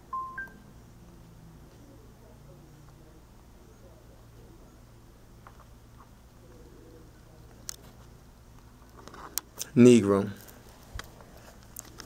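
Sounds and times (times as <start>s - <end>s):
faint room noise: 0.0s - 12.0s
short electronic beeps: 0.1s - 0.7s.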